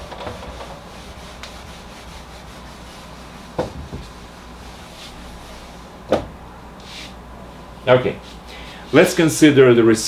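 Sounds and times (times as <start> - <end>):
eraser rubbing on whiteboard: 0.2 - 5.7
sharp knocks: 3.6 - 4.1.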